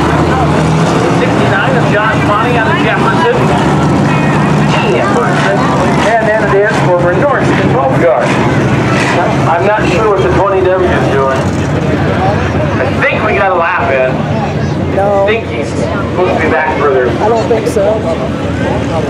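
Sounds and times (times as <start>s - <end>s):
people's voices: 0.0s - 19.0s
race car engines running: 0.0s - 19.0s.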